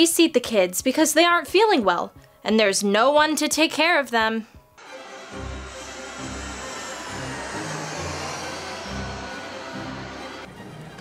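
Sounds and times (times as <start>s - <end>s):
jet engines rushing: 4.8s - 11.0s.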